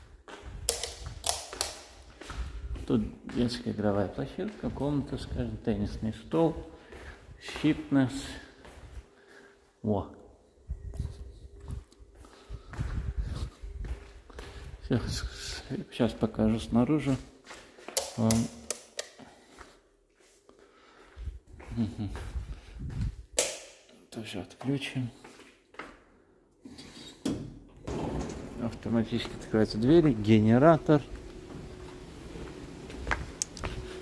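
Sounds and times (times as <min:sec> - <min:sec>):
footsteps on tiled floor: 0:00.0 - 0:09.8, 0:10.6 - 0:18.3, 0:19.2 - 0:23.4, 0:24.5 - 0:26.8, 0:29.2 - 0:34.0
faint low lift hum: 0:27.8 - 0:34.0.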